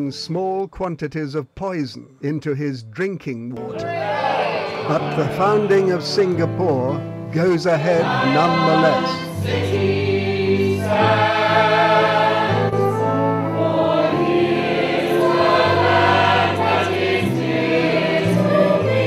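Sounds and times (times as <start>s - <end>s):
choir singing sustained chords: 3.6s - 19.0s
instrumental accompaniment: 3.6s - 19.0s.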